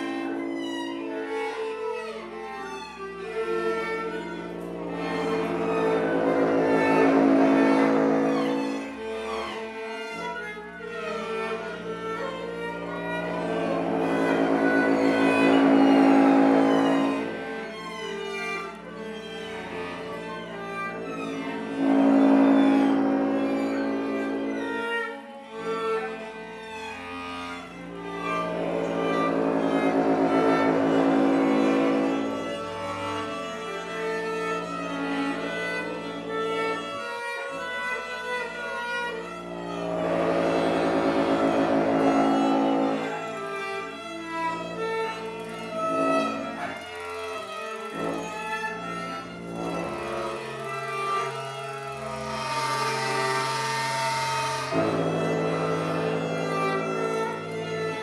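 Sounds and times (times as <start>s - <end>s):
bowed string instruments: 0.0s - 58.0s.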